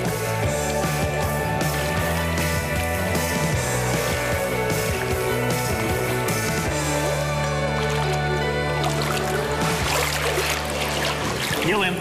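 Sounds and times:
background music: 0.0s - 12.0s
pool water splashing: 0.2s - 12.0s
man speaking: 11.6s - 12.0s.

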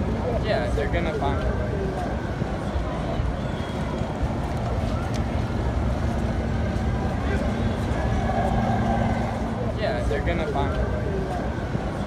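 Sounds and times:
traffic rumble: 0.0s - 12.0s
voices of passers-by: 0.0s - 12.0s
steady low hum: 4.2s - 12.0s.

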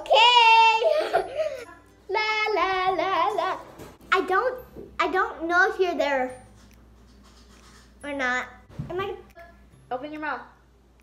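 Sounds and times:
girl singing wordless tune: 0.0s - 6.4s.

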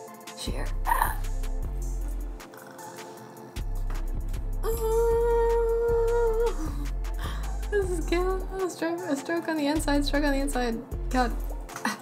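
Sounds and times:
beat music with deep bass: 0.0s - 12.0s
woman humming: 0.8s - 1.2s, 4.6s - 8.7s.

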